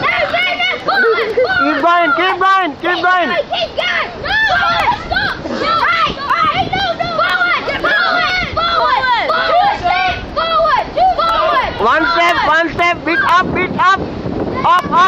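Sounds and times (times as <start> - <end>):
people shouting overlapping: 0.0 - 13.9.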